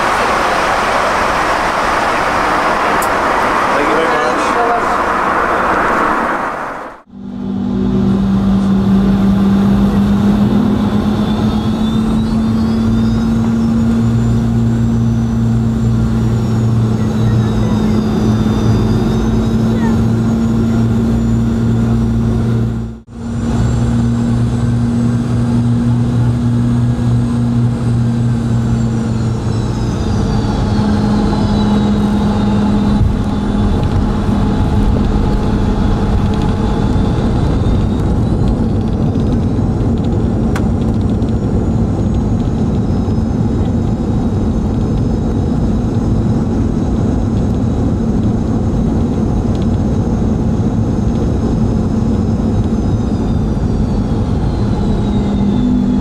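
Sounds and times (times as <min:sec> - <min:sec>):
airplane engines humming: 0:00.0 - 0:56.0
high engine whine: 0:00.0 - 0:56.0.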